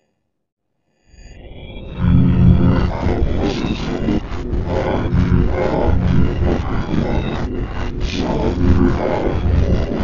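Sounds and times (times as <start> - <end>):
loud distorted commercial soundtrack: 1.9 - 10.0.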